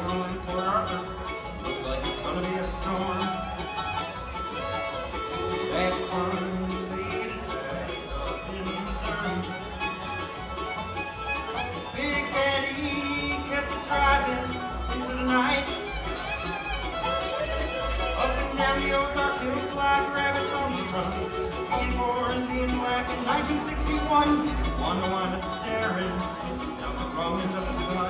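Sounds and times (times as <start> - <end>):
bluegrass band playing: 0.0 - 28.0
bowed fiddle: 0.0 - 28.0.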